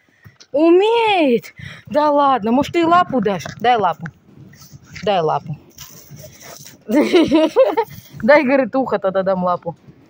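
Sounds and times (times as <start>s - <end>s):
woman's high-pitched voice: 0.6s - 4.1s.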